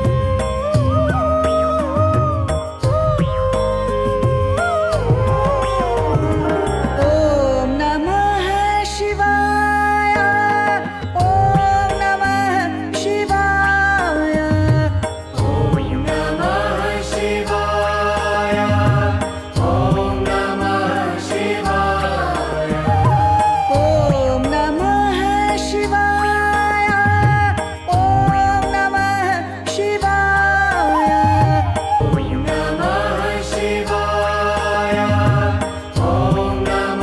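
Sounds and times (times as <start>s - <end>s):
instrumental accompaniment: 0.0s - 37.0s
steady low drone: 2.9s - 9.9s, 15.3s - 23.6s, 32.0s - 37.0s
person chanting: 5.6s - 9.5s
chanted mantra singing: 15.3s - 26.9s, 27.9s - 37.0s.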